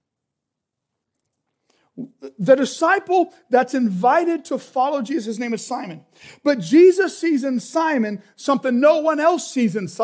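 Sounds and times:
man speaking: 2.0 - 10.0.

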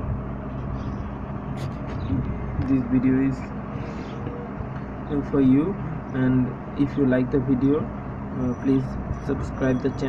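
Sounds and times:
low background rumble and hum: 0.0 - 10.0.

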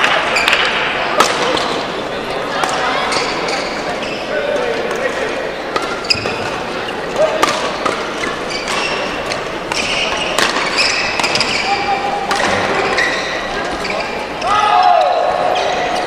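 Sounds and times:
rackets striking shuttlecocks: 0.0 - 1.9, 5.7 - 6.6, 7.2 - 11.6
echoing voices: 0.0 - 16.0.

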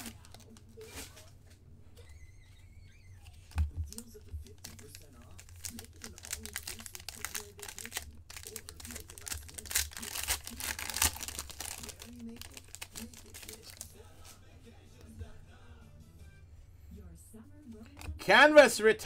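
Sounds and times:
plastic wrapper crinkling and tearing: 0.0 - 1.3, 3.5 - 13.9.

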